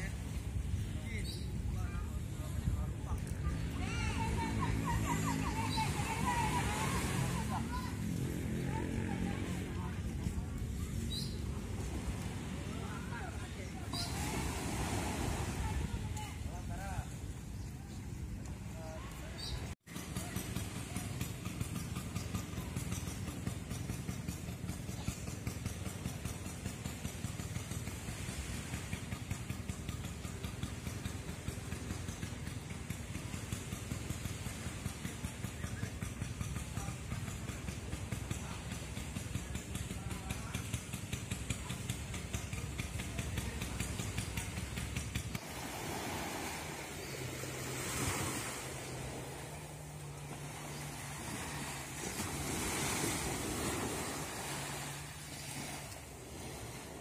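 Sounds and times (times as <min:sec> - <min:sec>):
motorcycle engine running: 0:00.0 - 0:14.1, 0:19.9 - 0:45.6
surf: 0:00.0 - 0:57.0
wind: 0:00.0 - 0:57.0.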